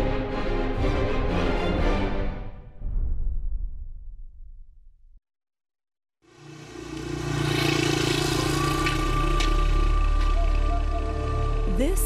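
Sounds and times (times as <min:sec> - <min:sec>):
motorcycle engine running: 0:06.3 - 0:11.2.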